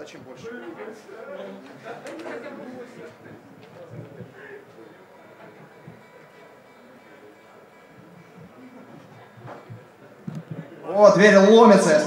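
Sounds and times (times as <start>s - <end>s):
faint voices talking: 0.0s - 12.0s.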